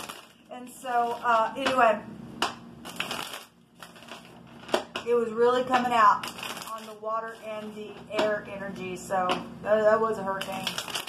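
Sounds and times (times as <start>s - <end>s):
cards shuffling rustle: 2.9s - 5.0s, 6.2s - 7.5s, 10.4s - 11.0s
cards snapping: 10.6s - 11.0s.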